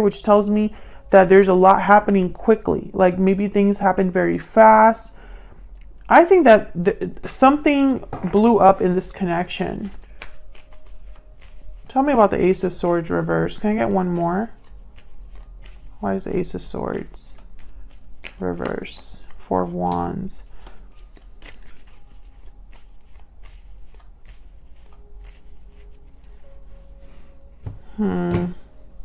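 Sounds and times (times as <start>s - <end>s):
cards being shuffled: 9.6s - 26.1s.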